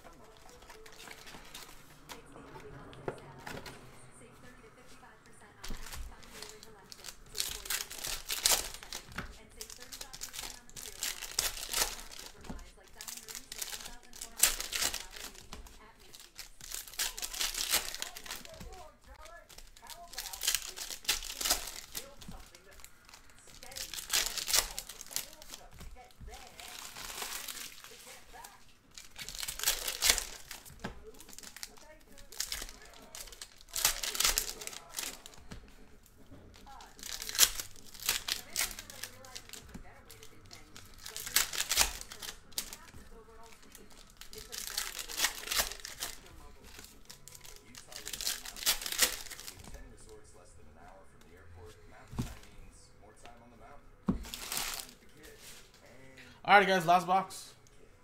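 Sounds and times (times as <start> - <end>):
foil wrappers crinkling and tearing: 0.0 - 3.7, 5.3 - 50.2, 54.1 - 57.2.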